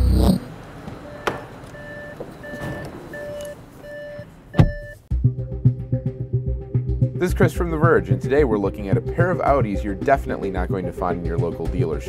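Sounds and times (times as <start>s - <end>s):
car door shutting: 0.8s - 3.6s, 4.5s - 5.0s
car warning chime: 1.0s - 5.0s.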